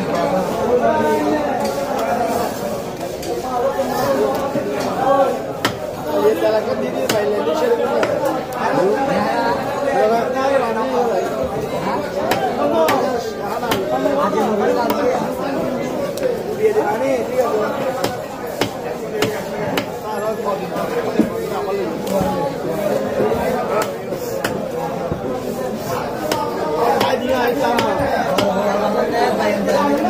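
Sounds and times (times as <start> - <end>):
chatter of voices: 0.0 - 30.0
cleaver chopping on wooden block: 18.0 - 20.0.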